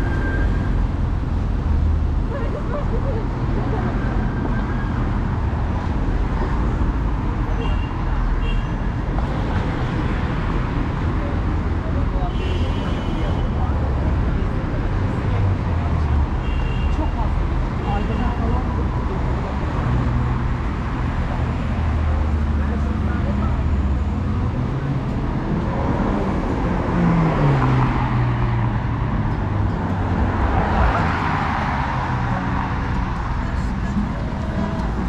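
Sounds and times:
road traffic: 0.0 - 35.0
voices of passers-by: 0.0 - 35.0.

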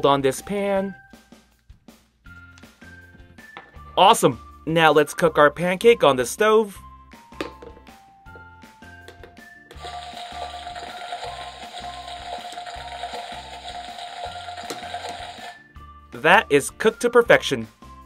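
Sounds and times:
background music with steady beat: 0.0 - 18.0.

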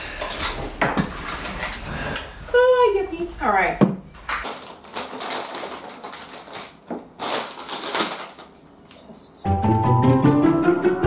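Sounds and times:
plastic wrappers crinkling: 4.2 - 9.1
music with plucked strings: 9.5 - 11.0.

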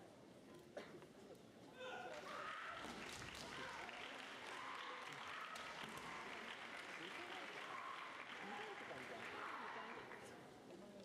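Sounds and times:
spectators applauding in large hall: 2.3 - 10.4.

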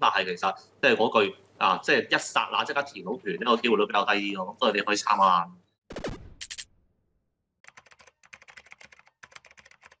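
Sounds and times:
keyboard typing clicks: 7.6 - 10.0.

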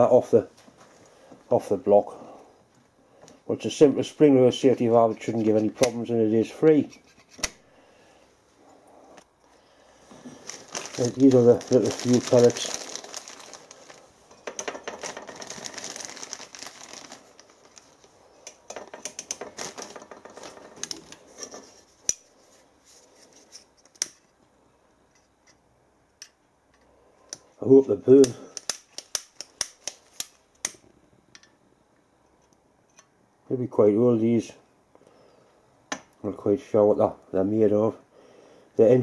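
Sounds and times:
plastic bag crinkling: 10.0 - 21.7.

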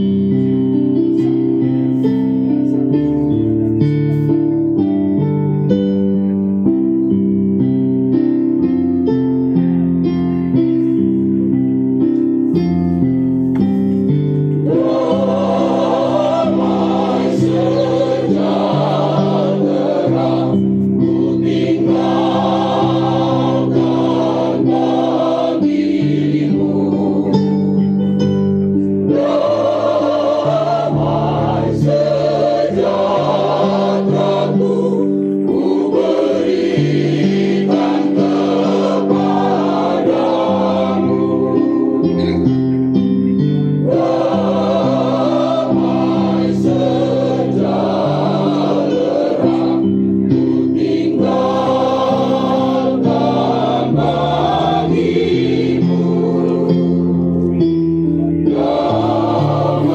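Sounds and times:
electronic keyboard: 0.0 - 59.9
mixed choir singing: 14.6 - 28.1, 28.9 - 42.6, 43.6 - 59.9.

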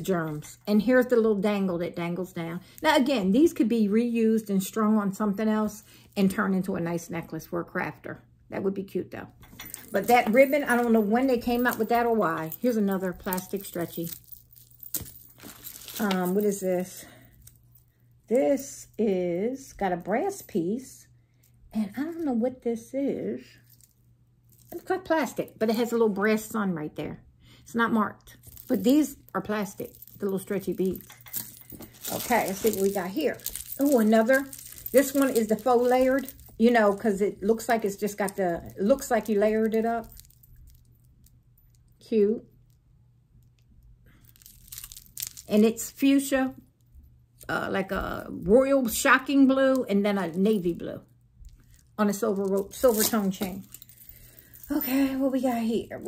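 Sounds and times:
low room hum: 0.0 - 56.0
beads clicking: 9.4 - 16.6, 28.4 - 42.0, 43.4 - 45.8
plastic bag crinkling: 9.7 - 16.6, 28.4 - 40.9, 44.2 - 45.8.

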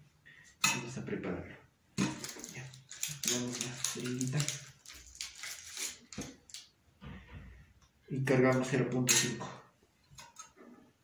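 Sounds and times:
plastic syringe clicks and rustles: 2.0 - 6.7.

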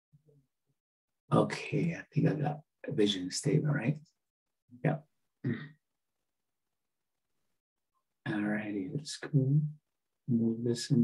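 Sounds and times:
person clearing throat: 5.4 - 5.8.

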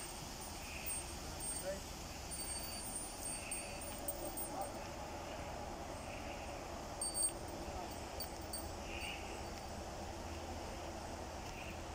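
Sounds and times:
low outdoor rumble: 0.0 - 11.9.

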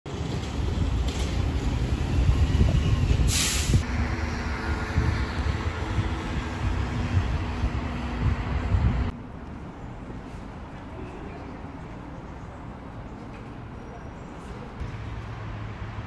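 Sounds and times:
outdoor background noise: 0.1 - 16.0
passing vehicles rumble: 0.1 - 16.0
short burst of hiss: 3.3 - 3.8.

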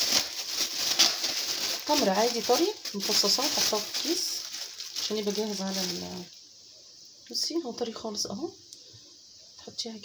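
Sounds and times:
plastic bag crinkling: 0.0 - 6.4.

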